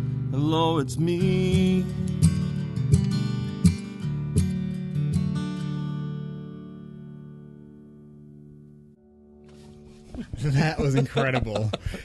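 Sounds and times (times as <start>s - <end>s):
acoustic guitar strums: 0.0s - 11.0s.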